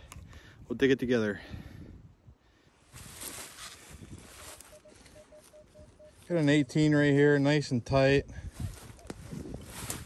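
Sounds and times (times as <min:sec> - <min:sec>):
metal detector beeping: 0:04.5 - 0:06.6.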